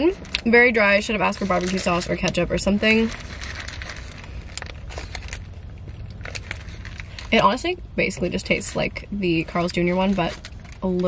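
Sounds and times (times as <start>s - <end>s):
paper wrapper crinkling: 0.0s - 11.0s
low rumble: 0.2s - 9.6s.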